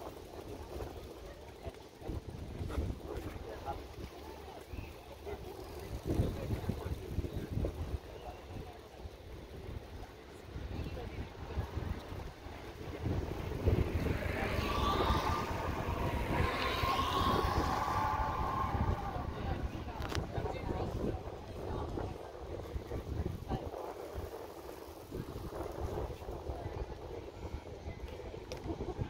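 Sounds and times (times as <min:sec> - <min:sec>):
faint voices: 0:00.0 - 0:29.0
wind buffeting microphone: 0:00.0 - 0:29.0
steady whine: 0:11.9 - 0:21.6.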